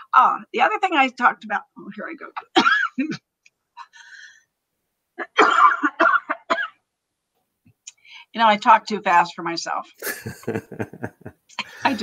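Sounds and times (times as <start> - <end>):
woman coughing: 2.4 - 3.2, 5.2 - 6.8, 11.6 - 12.0.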